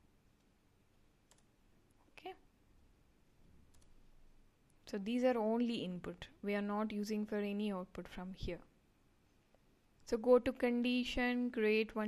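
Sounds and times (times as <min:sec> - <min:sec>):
faint computer mouse clicks: 0:03.7 - 0:04.0.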